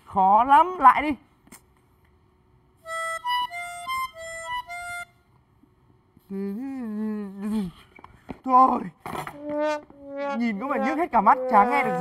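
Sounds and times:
recorder playing notes: 2.8 - 5.2, 9.4 - 12.0.

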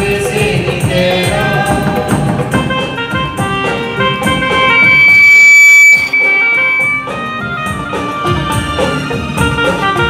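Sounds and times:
instrumental accompaniment: 2.6 - 10.0.

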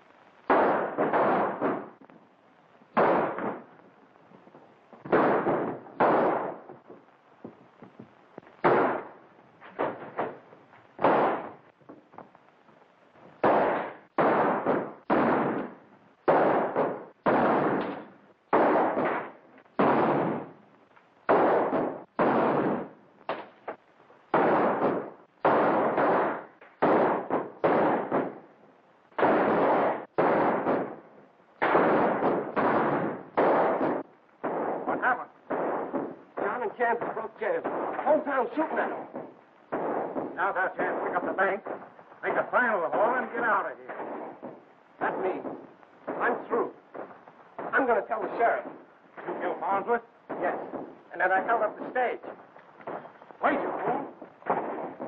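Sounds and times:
gunshots: 0.0 - 2.1, 2.9 - 12.4, 13.1 - 55.0.

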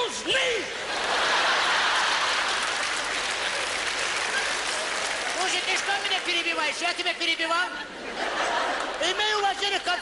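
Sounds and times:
audience applauding: 1.1 - 7.0.

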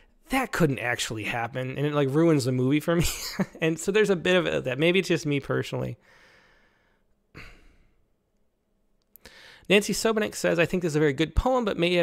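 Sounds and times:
man breathing into microphone: 6.0 - 7.9, 9.2 - 9.7.

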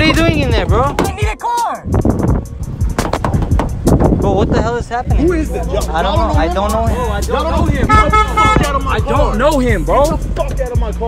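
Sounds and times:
hip-hop music with a beat: 0.0 - 11.0.

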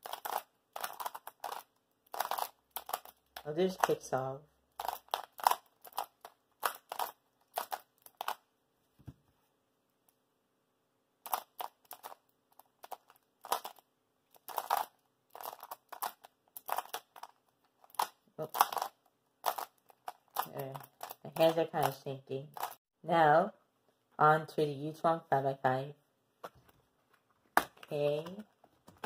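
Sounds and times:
plastic puzzle clacking: 0.0 - 4.1, 4.7 - 8.5, 11.2 - 22.8.

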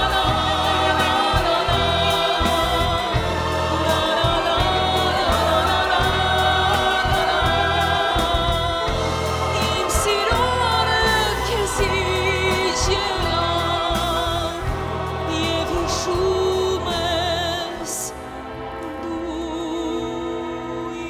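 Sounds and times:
bowed violins: 0.0 - 21.0
choir singing: 0.0 - 21.0
low accompaniment: 0.0 - 21.0.

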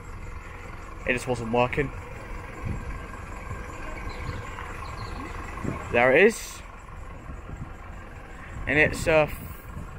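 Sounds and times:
diesel train engine rumble: 0.0 - 9.9.

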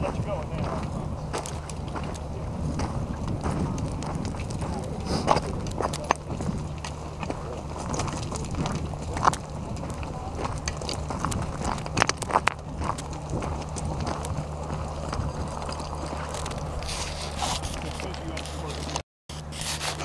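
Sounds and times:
footsteps crunching on gravel: 0.0 - 20.0
steady low hum: 0.0 - 20.0
clicks and scrapes: 15.4 - 20.0.

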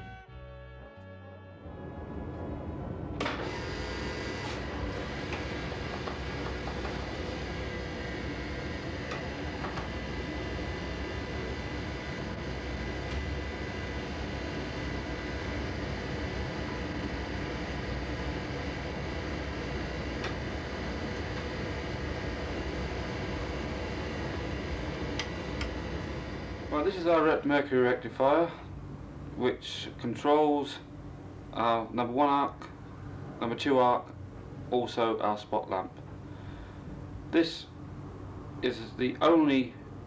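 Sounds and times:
film projector whirring: 3.1 - 27.4.

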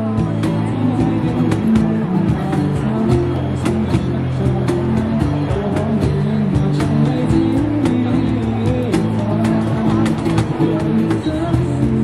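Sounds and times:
acoustic guitar playing chords: 0.0 - 12.0
cajon beat struck by hand: 0.0 - 12.0.

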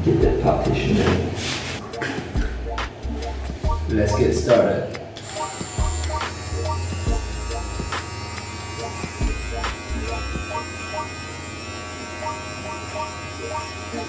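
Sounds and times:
background music with bass beat: 1.8 - 4.5, 5.4 - 8.1, 8.7 - 10.6
hair trimmer buzzing: 5.2 - 14.0.

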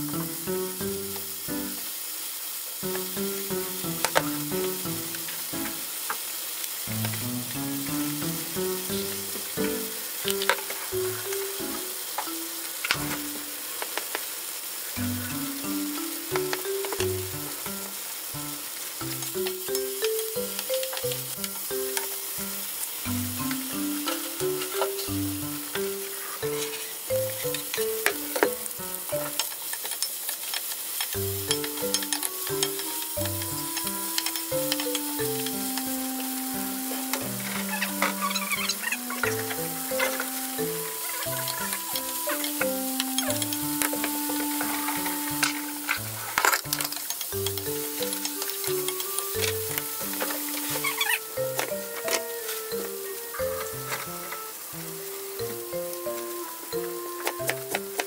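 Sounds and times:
light background music: 0.0 - 1.9, 6.9 - 13.5, 15.0 - 29.5, 31.2 - 58.0
tofu sizzling in frying pan: 0.0 - 58.0.

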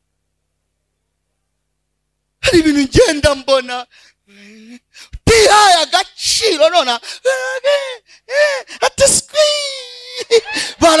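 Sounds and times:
man exclaiming through microphone: 2.4 - 3.9, 4.7 - 8.0, 8.7 - 11.0.

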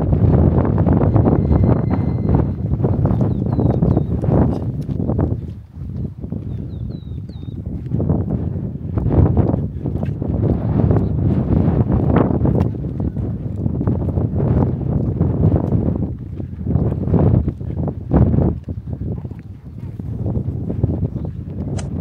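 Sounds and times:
wind buffeting microphone: 0.0 - 22.0
footsteps on stone path: 2.8 - 21.8.

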